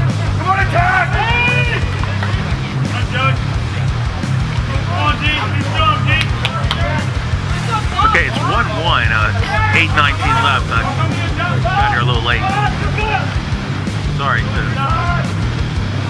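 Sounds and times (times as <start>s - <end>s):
music: 0.0s - 16.0s
voices calling out: 0.0s - 16.0s.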